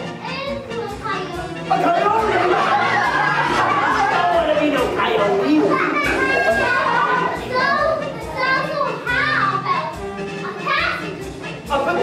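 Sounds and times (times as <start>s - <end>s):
children talking and calling out: 0.0s - 11.7s.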